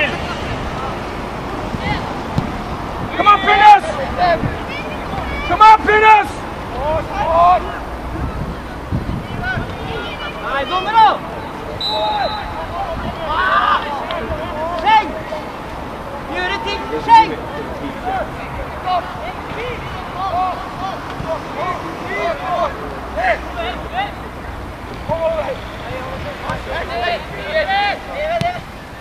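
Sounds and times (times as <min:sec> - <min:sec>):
people shouting on a football pitch: 0:01.6 - 0:29.0.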